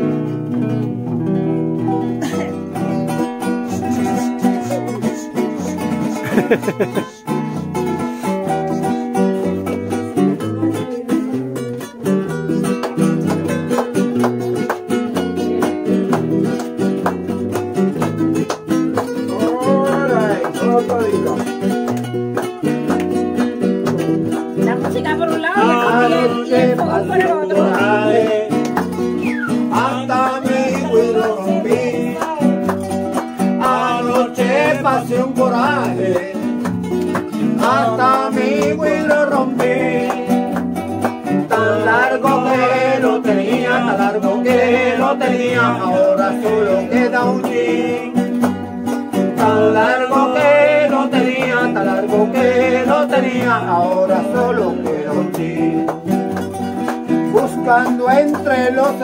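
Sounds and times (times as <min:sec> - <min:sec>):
classical guitars playing: 0:00.0 - 0:59.0
person singing: 0:02.2 - 0:12.8, 0:19.2 - 0:21.5, 0:24.6 - 0:36.6, 0:37.5 - 0:48.5, 0:49.3 - 0:56.0, 0:57.3 - 0:59.0.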